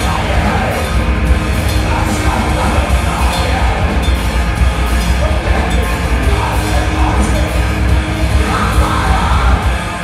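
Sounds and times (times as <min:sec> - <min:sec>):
bass guitar: 0:00.0 - 0:10.0
drum kit with crashing cymbals: 0:00.0 - 0:10.0
electric guitar: 0:00.0 - 0:10.0.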